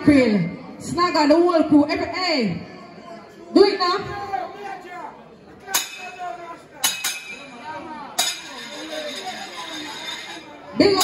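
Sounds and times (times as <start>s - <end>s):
faint background voices: 4.1s - 11.0s.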